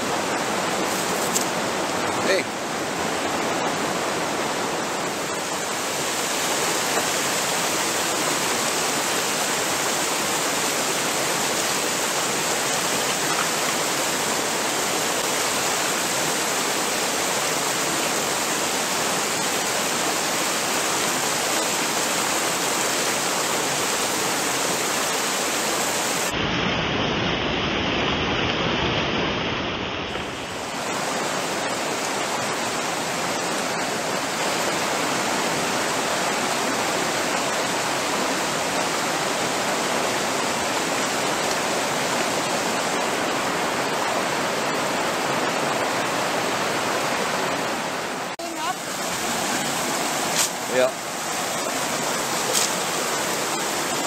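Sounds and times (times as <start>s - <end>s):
mountain stream rushing over rocks: 0.0s - 54.0s.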